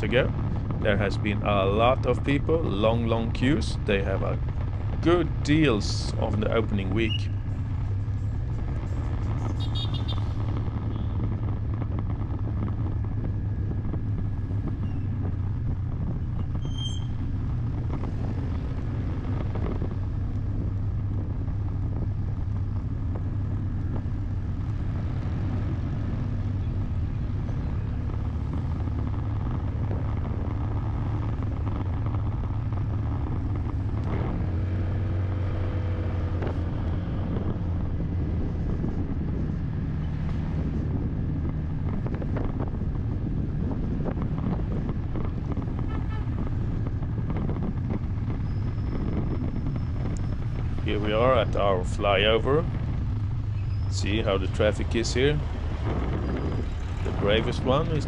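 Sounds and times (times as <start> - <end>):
vehicle engine and road noise: 0.0 - 58.0.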